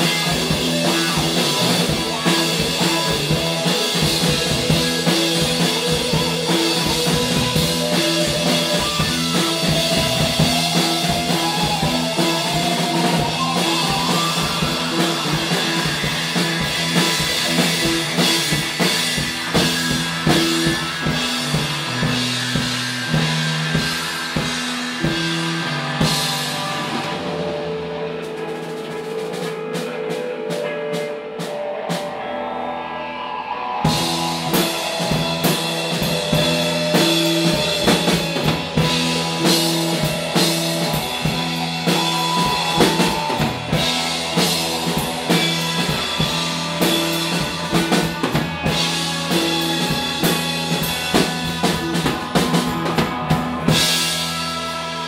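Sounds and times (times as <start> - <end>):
bass guitar: 0.0 - 55.0
drum kit: 0.0 - 55.0
electric guitar: 0.0 - 55.0.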